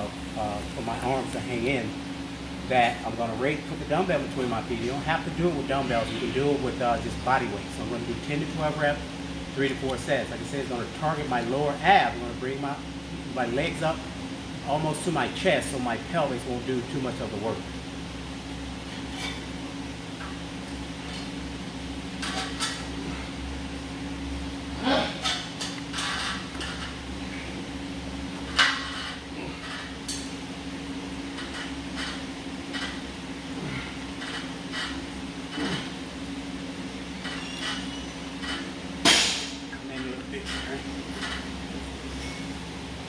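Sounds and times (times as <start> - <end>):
fan hum: 0.0 - 43.0
sharp metal clank: 39.0 - 39.6.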